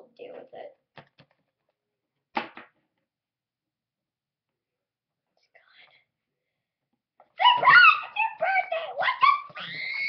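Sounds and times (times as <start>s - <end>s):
faint whisper: 5.3s - 6.4s.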